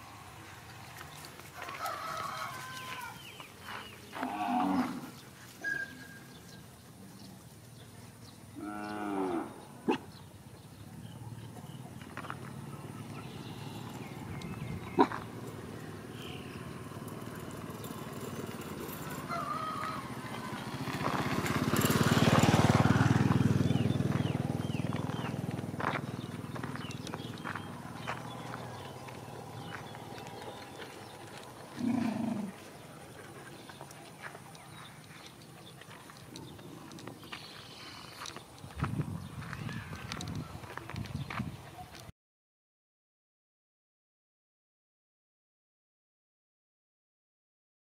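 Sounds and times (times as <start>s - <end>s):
long low animal call: 4.1s - 6.0s, 31.7s - 32.6s.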